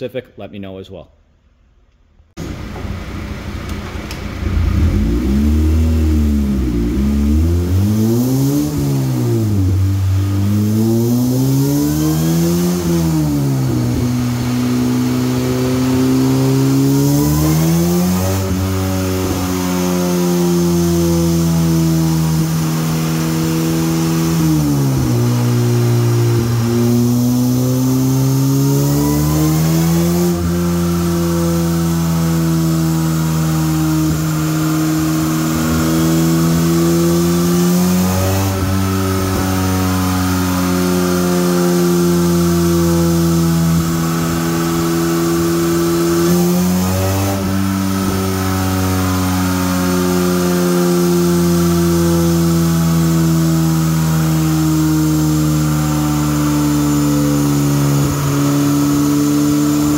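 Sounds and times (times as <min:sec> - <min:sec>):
race car engine revving: 0:02.4 - 0:59.9.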